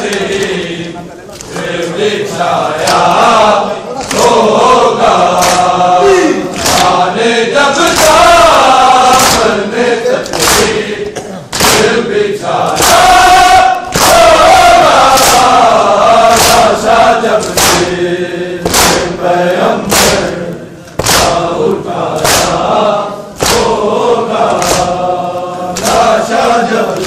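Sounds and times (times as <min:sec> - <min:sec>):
men chanting in unison: 0:00.0 - 0:27.0
hands slapping bare chests: 0:02.8 - 0:03.2, 0:04.0 - 0:04.4, 0:05.3 - 0:05.7, 0:06.5 - 0:07.0, 0:07.8 - 0:08.3, 0:09.1 - 0:09.6, 0:10.2 - 0:10.8, 0:11.5 - 0:12.0, 0:13.9 - 0:16.8, 0:17.4 - 0:18.0, 0:18.6 - 0:19.2, 0:19.8 - 0:21.5, 0:22.1 - 0:22.7, 0:23.4 - 0:23.8, 0:24.4 - 0:25.0, 0:25.7 - 0:26.1.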